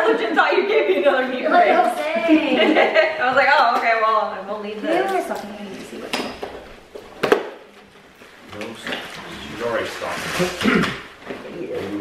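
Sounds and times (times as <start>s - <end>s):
tissue paper rustling and crackling: 9.5s - 10.6s.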